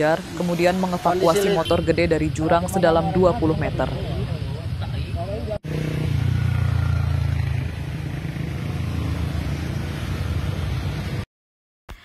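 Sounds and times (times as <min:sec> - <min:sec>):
people talking: 0:00.0 - 0:05.6
passing road traffic: 0:00.0 - 0:11.3
motorcycle engines running: 0:00.1 - 0:11.2.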